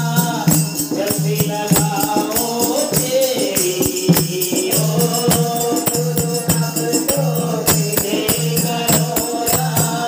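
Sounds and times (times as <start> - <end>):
group singing devotional song: 0.0 - 10.0
jingling percussion: 0.0 - 10.0.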